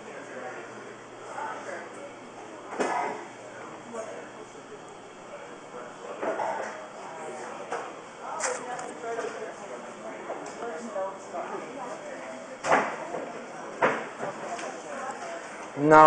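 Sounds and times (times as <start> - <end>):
low talking voices: 0.0 - 16.0.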